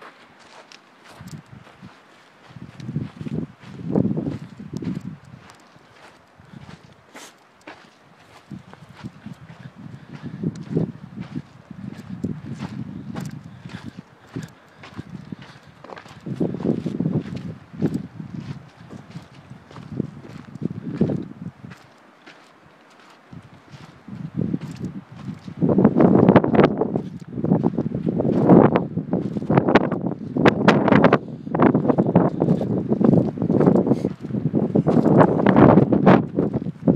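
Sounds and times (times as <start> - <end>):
footsteps crunching on gravel: 0.0 - 36.9
wind buffeting microphone: 0.4 - 22.5, 23.2 - 36.9.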